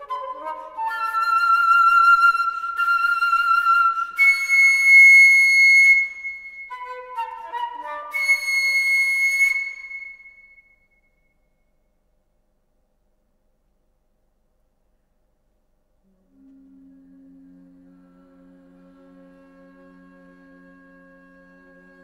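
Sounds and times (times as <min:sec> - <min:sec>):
flute-like wind instrument: 0:00.0 - 0:10.8, 0:16.1 - 0:22.0.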